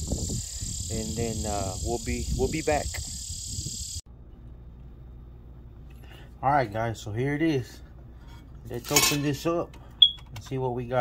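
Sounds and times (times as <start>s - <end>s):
crickets chirring: 0.0s - 4.0s
low hum: 0.0s - 6.8s
low outdoor rumble: 0.0s - 11.0s.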